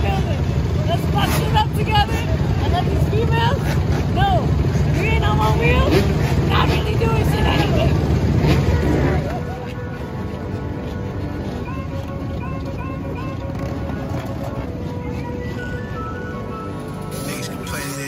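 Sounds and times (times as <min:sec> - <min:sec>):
people talking: 0:00.0 - 0:08.0, 0:17.1 - 0:18.0
motorcycle engines idling: 0:00.0 - 0:18.0.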